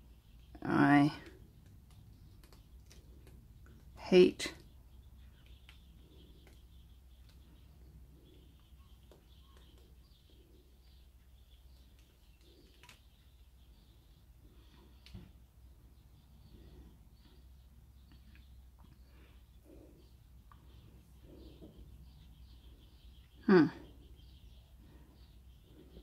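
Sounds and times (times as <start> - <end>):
faint high chirps: 4.9 - 15.3.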